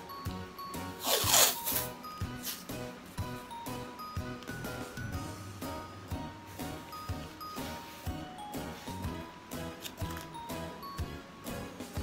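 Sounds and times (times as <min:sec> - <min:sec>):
background music: 0:00.0 - 0:12.0
paper tape ripping off roll: 0:01.0 - 0:02.6.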